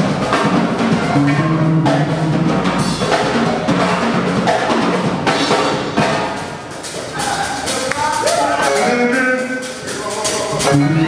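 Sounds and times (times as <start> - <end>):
bass guitar: 0.0 - 11.0
drum kit kick and snare: 0.0 - 11.0.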